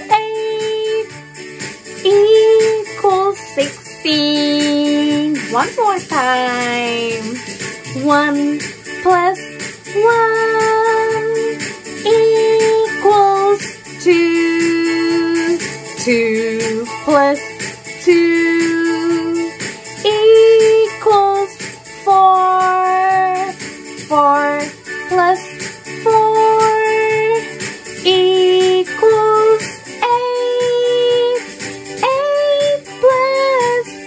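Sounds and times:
woman singing: 0:00.0 - 0:01.1, 0:02.0 - 0:34.0
backing music track: 0:00.0 - 0:34.0.

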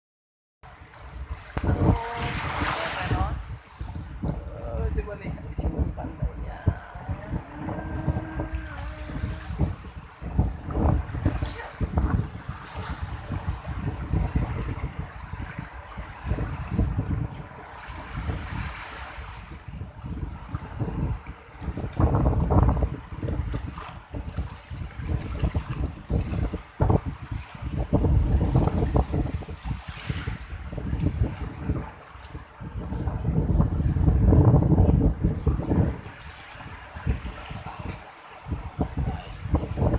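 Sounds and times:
small waves on sandy shore: 0:00.6 - 0:39.9
wind buffeting microphone: 0:00.6 - 0:39.9.

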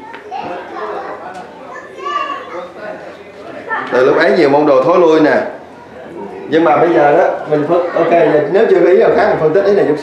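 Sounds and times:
faint voices answering: 0:00.0 - 0:10.0.

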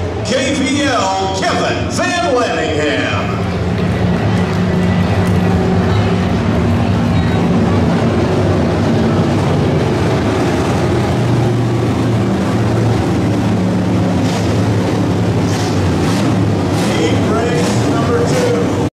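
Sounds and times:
race car engines droning: 0:00.0 - 0:18.9.

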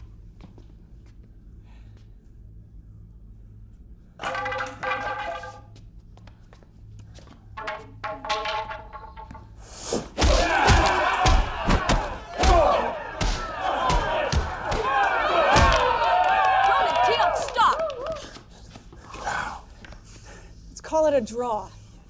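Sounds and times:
heavy thuds of stick blows: 0:07.6 - 0:15.9
crowd cheering and shouting: 0:10.3 - 0:18.2.

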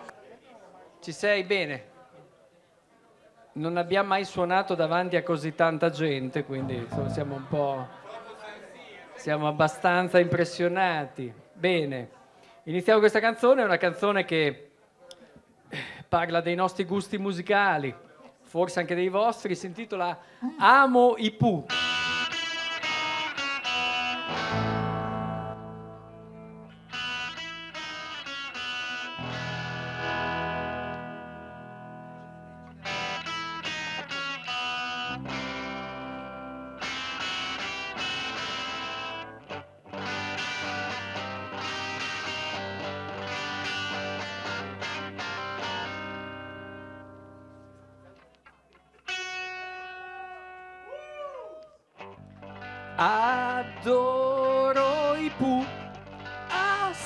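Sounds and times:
bass guitar: 0:06.6 - 0:07.9, 0:21.7 - 0:48.2, 0:52.0 - 0:57.0
electric guitar chords: 0:06.6 - 0:08.0, 0:21.7 - 0:48.1, 0:49.0 - 0:50.9, 0:52.0 - 0:57.0.

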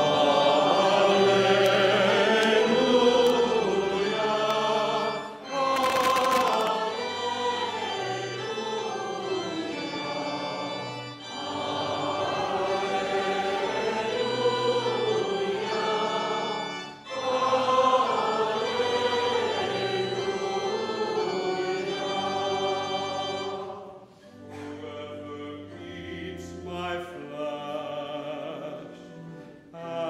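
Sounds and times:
choir singing: 0:00.0 - 0:30.0.

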